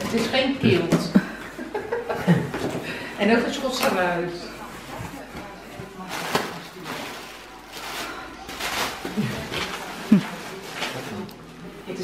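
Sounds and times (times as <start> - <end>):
cardboard and plastic packaging crinkling: 4.6 - 11.6.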